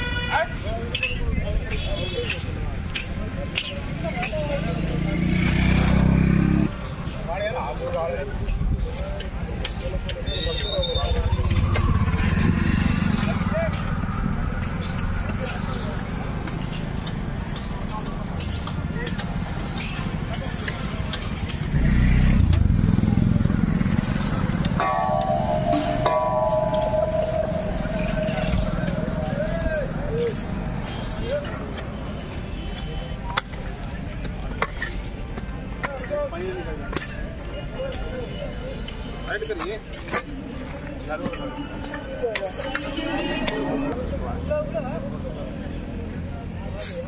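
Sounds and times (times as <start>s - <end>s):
auto-rickshaw engine passing: 4.5s - 6.8s, 11.1s - 18.4s, 19.2s - 32.1s
faint voices: 6.8s - 47.0s
spades striking dry soil: 11.8s - 21.7s, 24.6s - 29.6s
held tone: 24.8s - 30.2s.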